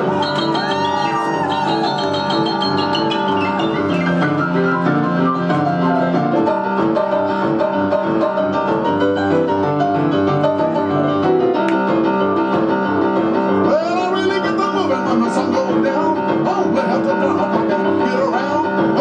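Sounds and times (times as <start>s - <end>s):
rock and roll piano: 0.0s - 19.0s.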